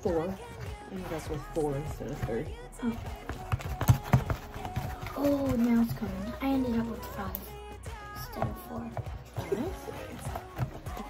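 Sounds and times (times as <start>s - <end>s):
spoon stirring slime: 0.0s - 11.0s.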